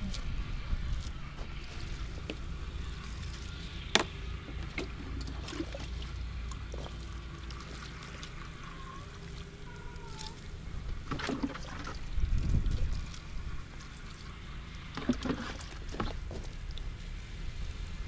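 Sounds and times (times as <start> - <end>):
low steady rumble: 0.0 - 18.0
water poured onto soil: 4.6 - 17.8.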